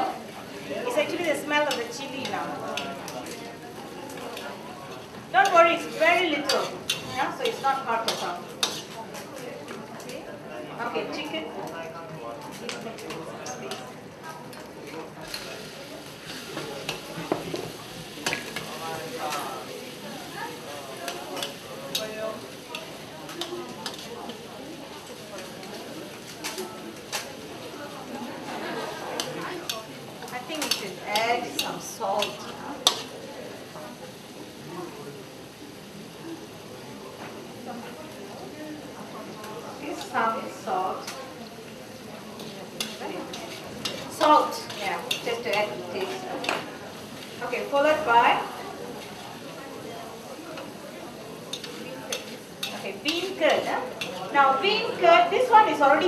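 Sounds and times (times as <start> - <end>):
paste sizzling in hot oil: 0.2 - 9.2, 15.2 - 56.0
metal spatula scraping a wok: 4.9 - 9.0, 15.2 - 17.1, 21.3 - 24.4, 30.4 - 33.2, 42.4 - 48.1, 51.5 - 54.6
spatula clanking on wok: 6.3 - 8.9, 21.1 - 24.4, 30.5 - 33.1, 42.4 - 46.7, 51.5 - 54.2.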